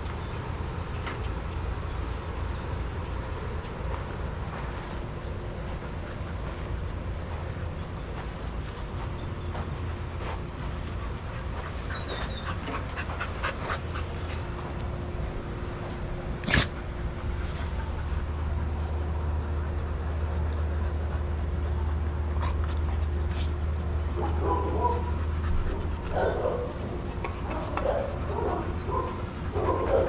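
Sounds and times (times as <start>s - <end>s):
steady low rumble: 0.0s - 30.0s
dog panting: 5.8s - 15.0s, 20.8s - 30.0s.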